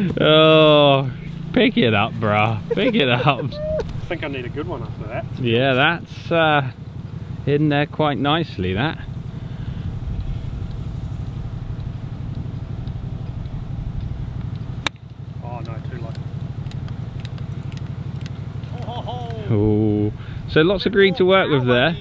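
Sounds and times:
small engine droning: 0.0s - 22.0s.

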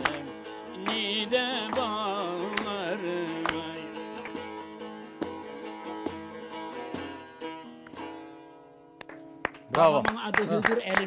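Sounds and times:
plucked long-necked lute: 0.0s - 9.4s.

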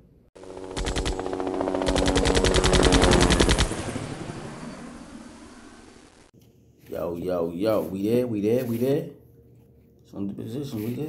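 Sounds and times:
low drone: 0.4s - 6.3s
machine-gun fire: 0.7s - 4.0s.

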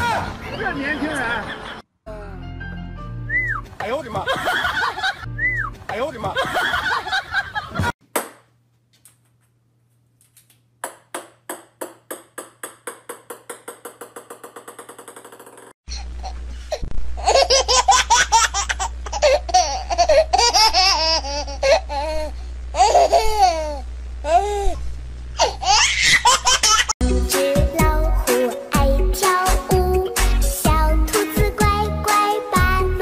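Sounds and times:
ping-pong ball bouncing on wood floor: 10.8s - 15.7s.

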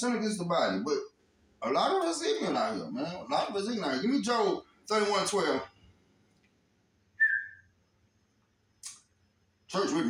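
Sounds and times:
short whistle-like tone: 7.2s - 7.7s.

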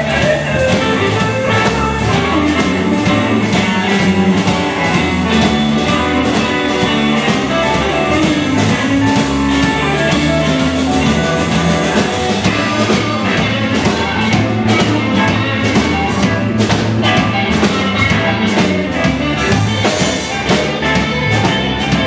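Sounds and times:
bass guitar: 0.0s - 22.0s
electric guitars: 0.0s - 22.0s.

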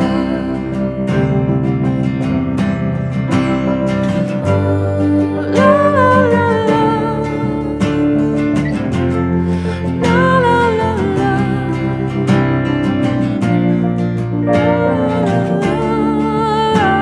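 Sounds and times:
woman singing: 0.0s - 1.6s, 4.2s - 8.7s, 9.7s - 13.2s, 14.3s - 17.0s
band playing slow song: 12.4s - 17.0s.

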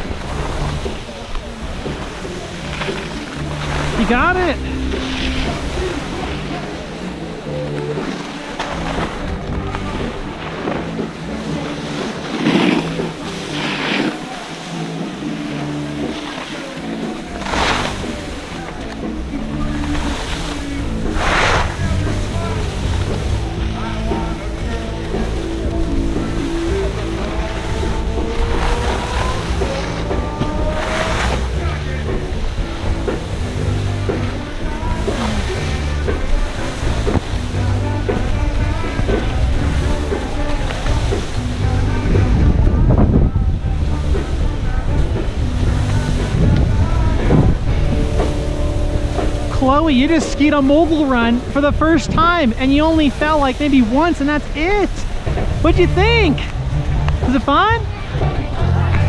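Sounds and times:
skis sliding on slushy snow: 0.0s - 7.0s, 7.9s - 32.0s, 32.6s - 41.5s
ski edges scraping: 1.8s - 7.0s, 7.9s - 23.6s, 27.1s - 31.8s
wind on microphone: 17.3s - 59.0s.

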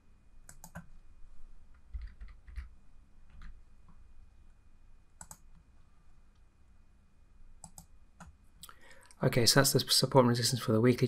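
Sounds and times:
computer mouse and keys clicking: 0.4s - 1.0s, 1.7s - 4.0s, 5.2s - 5.6s, 7.6s - 8.4s.

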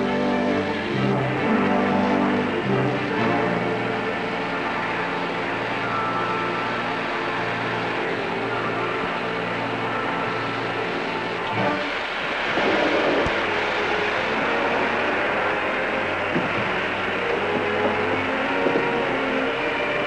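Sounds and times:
dramatic underscore music: 0.0s - 20.0s
rushing noise: 0.0s - 20.0s.

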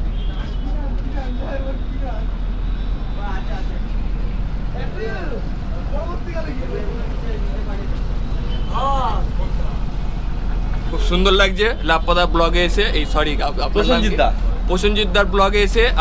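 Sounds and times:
boat engine droning: 0.0s - 16.0s.

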